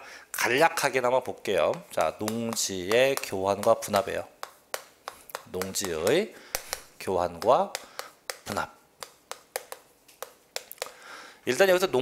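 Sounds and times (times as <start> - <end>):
chalk ticking on chalkboard: 1.6 - 11.0.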